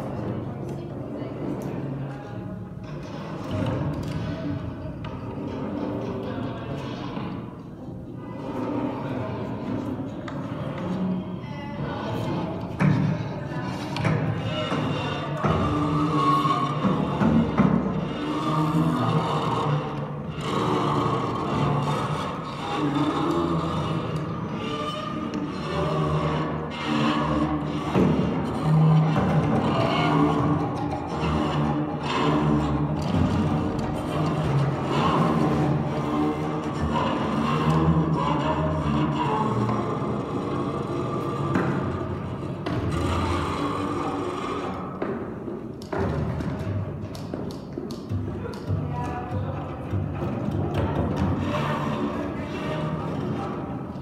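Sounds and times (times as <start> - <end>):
rasping scraping drone of wires: 13.6 - 45.2, 51.1 - 54.0.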